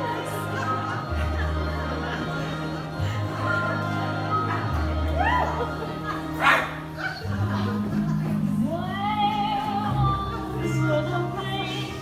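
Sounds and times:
low held music: 0.0 - 12.0.

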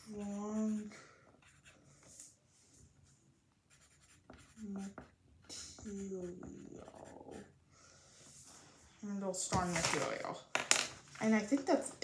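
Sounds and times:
pencil scratching on paper: 0.0 - 2.2, 3.7 - 7.6.

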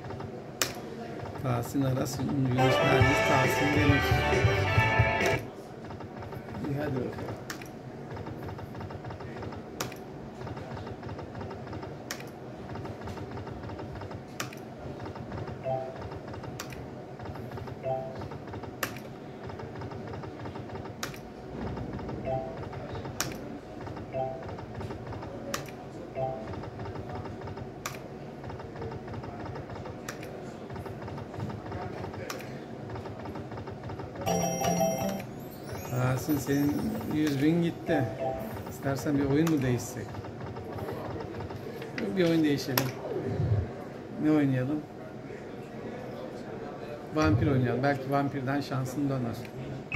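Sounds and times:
game music: 2.5 - 5.5, 34.3 - 37.4.

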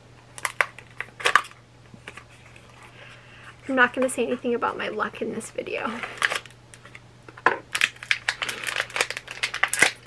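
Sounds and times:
cardboard packaging crackling: 5.9 - 7.0, 7.7 - 10.0.

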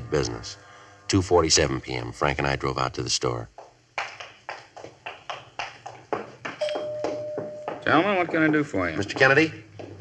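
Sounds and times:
footsteps on hard floor: 3.5 - 10.0.

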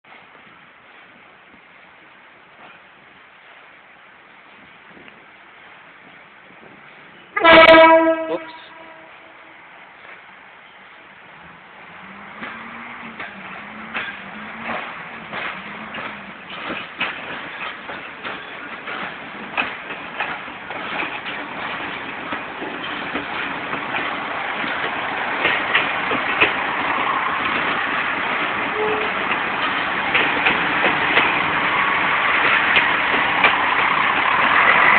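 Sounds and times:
train wheels on rails: 0.1 - 34.9
railcar horn blast: 7.4 - 9.6, 28.7 - 29.2.

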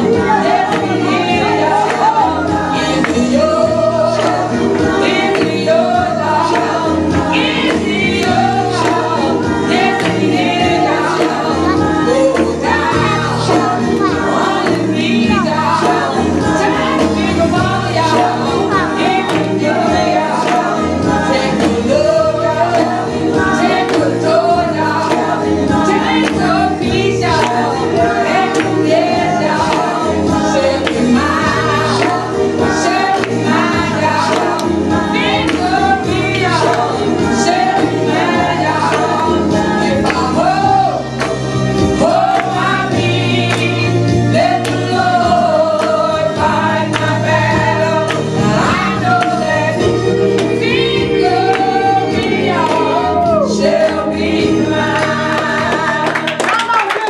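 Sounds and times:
low musical accompaniment: 0.0 - 56.7
congregation singing: 0.0 - 57.0.

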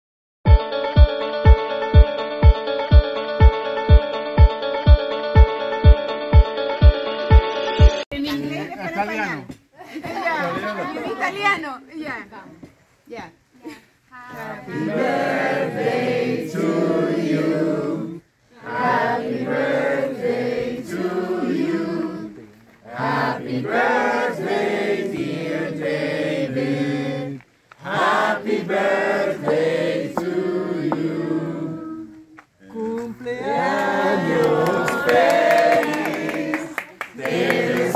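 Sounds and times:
party guests singing together: 14.3 - 32.2, 33.3 - 37.9.

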